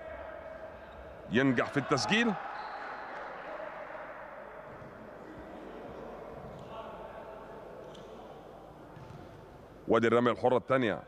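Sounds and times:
murmur of voices: 0.0s - 9.8s.

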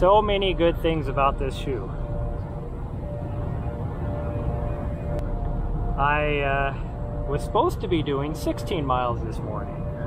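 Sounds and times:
faint steady hum: 0.0s - 10.0s
steady low rumble: 0.0s - 10.0s.

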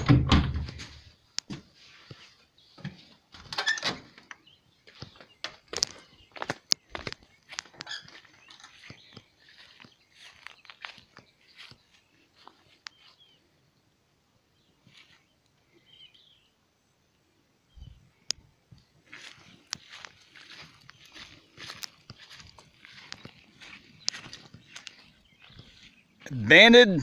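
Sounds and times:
faint bird chirps: 4.3s - 26.4s
footsteps on sandy ground: 4.5s - 13.5s, 14.6s - 16.3s, 18.7s - 27.0s.

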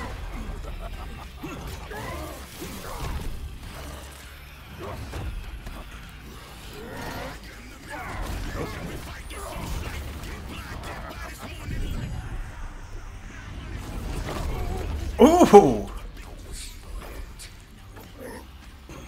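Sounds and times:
voice-like shouts: 15.2s - 15.9s.

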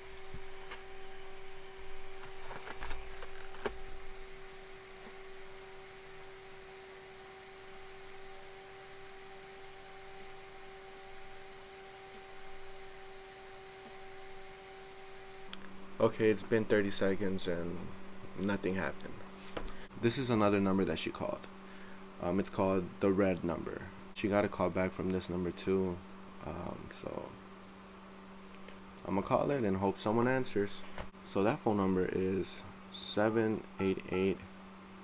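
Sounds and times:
low hum: 0.0s - 24.2s.

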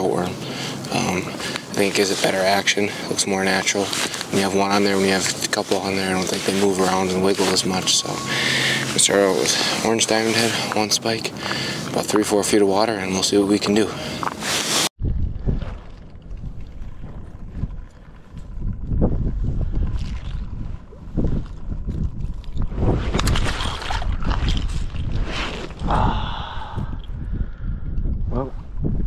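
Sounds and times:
wind buffeting microphone: 15.0s - 29.0s.

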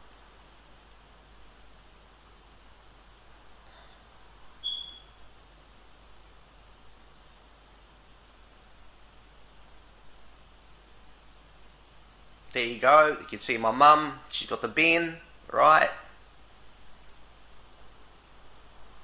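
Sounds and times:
faint room tone hiss: 0.0s - 19.0s
brief high-pitched chirp: 4.6s - 5.1s.

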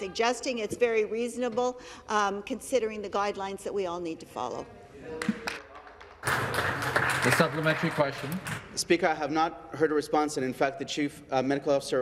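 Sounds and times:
scattered hand-clapping: 5.2s - 8.8s
man speaking: 7.2s - 12.0s.

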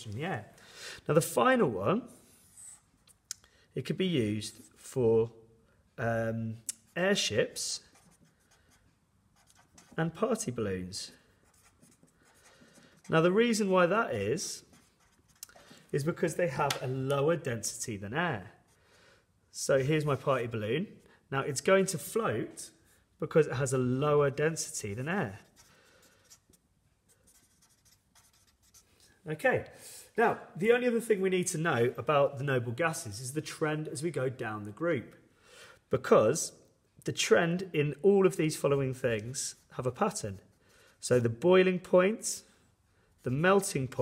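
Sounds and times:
marker writing on paper: 7.8s - 10.2s, 11.3s - 13.3s, 14.6s - 15.7s, 24.9s - 29.0s.

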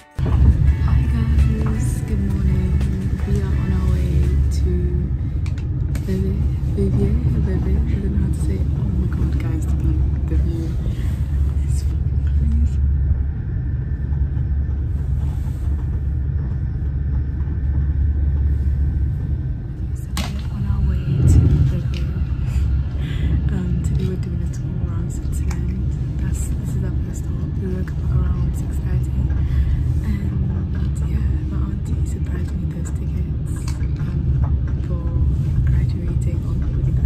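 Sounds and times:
thin steady whine: 0.0s - 37.0s
train rumbling: 0.0s - 37.0s.

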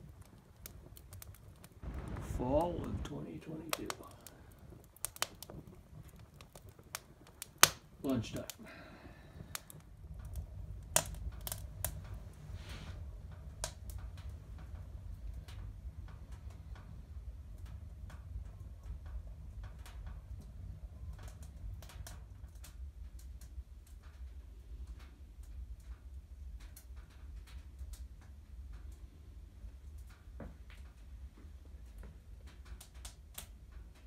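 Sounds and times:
low steady rumble: 0.0s - 34.0s
wood fire crackling: 0.0s - 34.0s.

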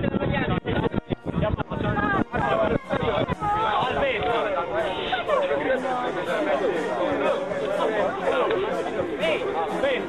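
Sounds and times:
many people chatting: 0.0s - 10.0s.

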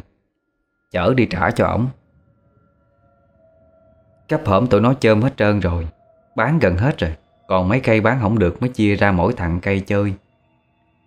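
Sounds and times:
faint background music drone: 0.0s - 11.0s.

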